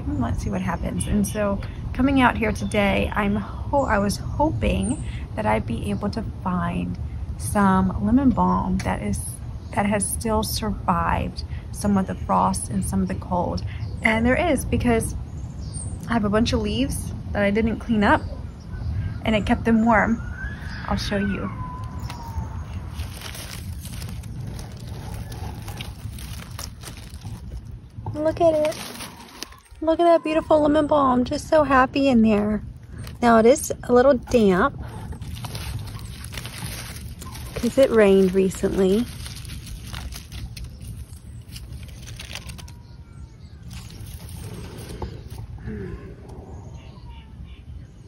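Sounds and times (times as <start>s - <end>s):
wind rumbling on microphone: 13.0s - 47.2s
dry leaves rustling: 20.6s - 30.4s, 34.3s - 45.4s.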